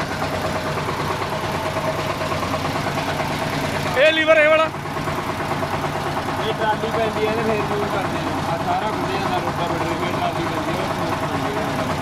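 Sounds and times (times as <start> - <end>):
small tractor engine idling: 0.0 - 12.0.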